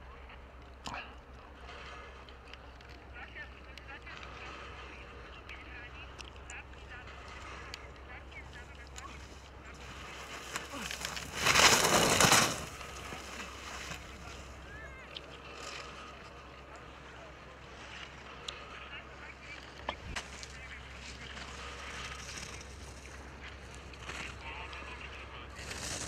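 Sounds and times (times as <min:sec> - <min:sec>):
skis scraping on snow: 0:01.5 - 0:26.0.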